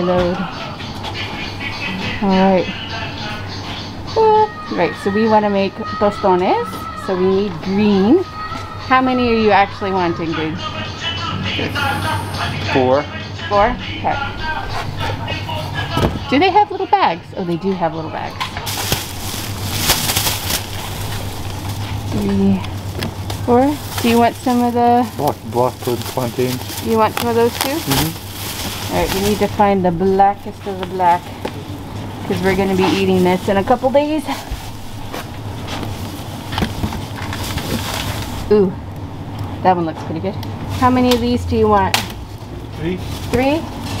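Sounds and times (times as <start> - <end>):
shop background hum: 0.0 - 44.0
plastic bag rustling and crinkling: 18.4 - 38.6, 40.6 - 41.3, 42.0 - 44.0.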